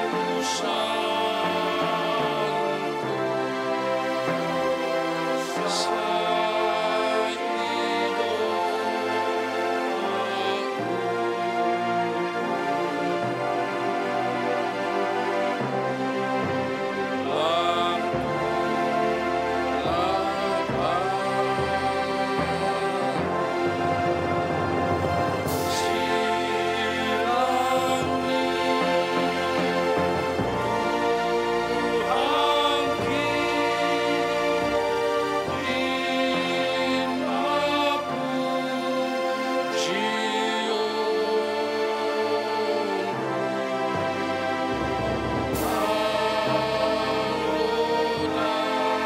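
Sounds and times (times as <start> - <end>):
men singing a hymn: 0.0 - 49.0.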